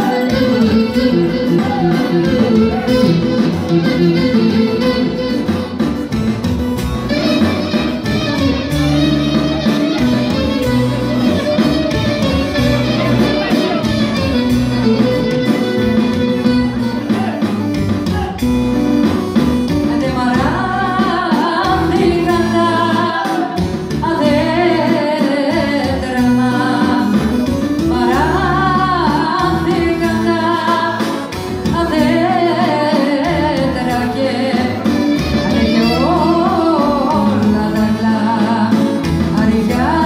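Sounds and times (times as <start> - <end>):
folk music over loudspeakers: 0.0 - 40.0.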